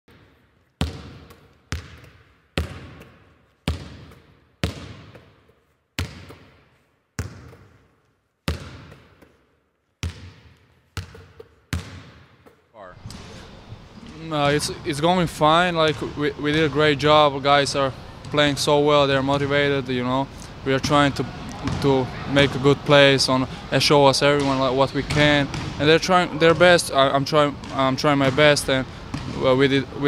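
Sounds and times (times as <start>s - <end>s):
basketball bouncing on hard court: 0.1s - 9.4s, 10.0s - 14.8s, 15.7s - 16.8s, 21.6s - 22.0s, 24.4s - 25.8s, 27.6s - 29.4s.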